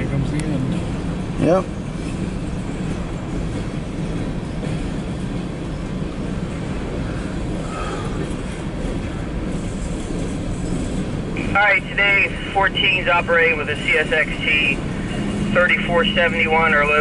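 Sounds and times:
train wheels rolling on rail: 0.0s - 17.0s.

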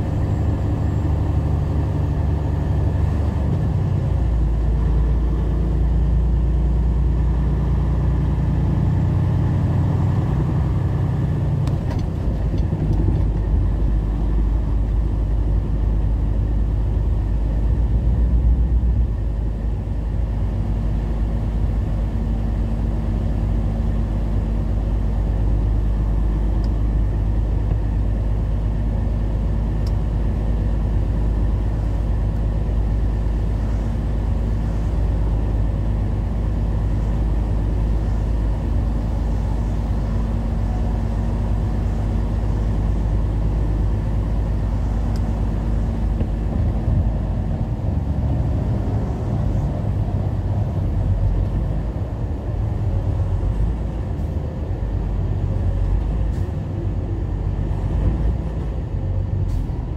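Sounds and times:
truck engine drone: 0.0s - 59.9s.

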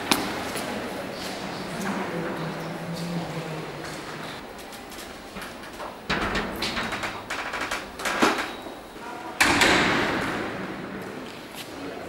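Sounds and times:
shelving unit rolling on track: 2.0s - 11.5s
rattling: 4.4s - 10.4s
loud bang: 6.0s - 11.2s.

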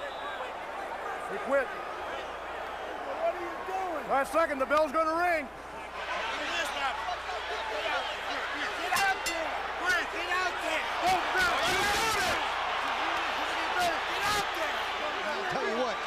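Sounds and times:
many voices shouting: 8.2s - 16.0s.

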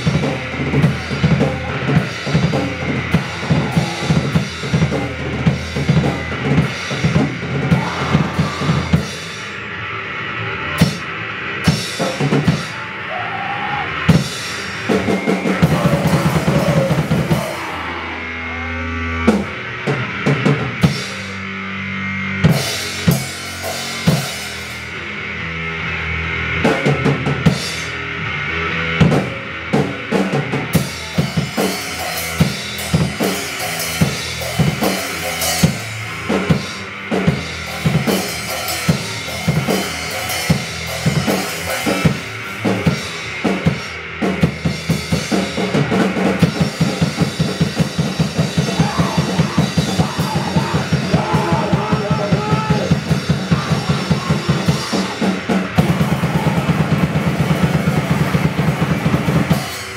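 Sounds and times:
held bass notes: 0.0s - 13.2s, 13.9s - 59.9s
drum kit: 0.0s - 59.9s.

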